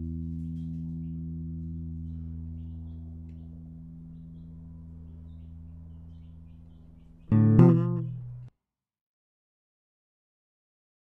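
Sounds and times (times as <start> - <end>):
low guitar and bass chord ringing: 0.0 - 8.5.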